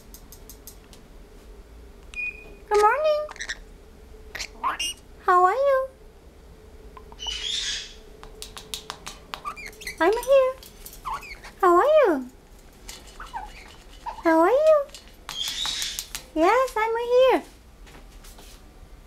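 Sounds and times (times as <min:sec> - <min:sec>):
parrot calling: 0:02.2 - 0:03.7, 0:04.3 - 0:05.4, 0:07.0 - 0:11.9, 0:13.0 - 0:16.2.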